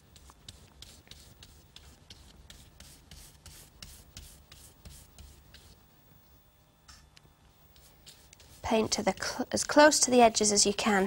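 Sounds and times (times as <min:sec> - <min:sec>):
paintbrush scratching on paper: 0:00.0 - 0:05.8, 0:07.6 - 0:10.0.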